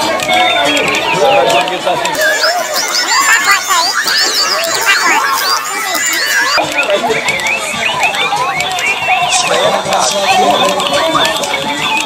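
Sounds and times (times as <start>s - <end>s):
tinny recorded voices: 0.0s - 12.0s
quick electronic chirps: 2.2s - 9.1s.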